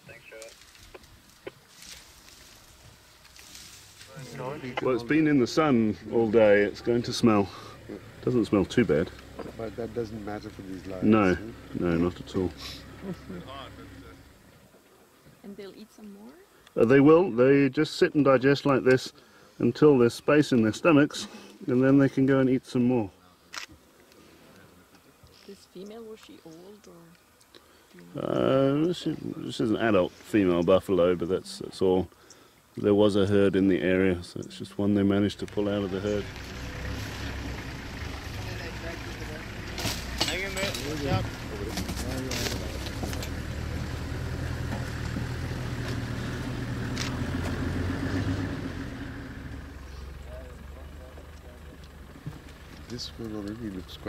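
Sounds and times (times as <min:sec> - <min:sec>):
vehicle engine idling: 0:00.2 - 0:15.2, 0:27.7 - 0:54.0.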